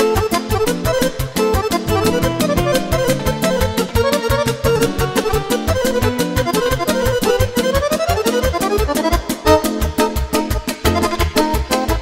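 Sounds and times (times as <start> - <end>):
accordion: 0.0 - 12.0
guitar: 0.0 - 12.0
keyboard: 0.0 - 12.0
fast drum beat: 1.7 - 7.5.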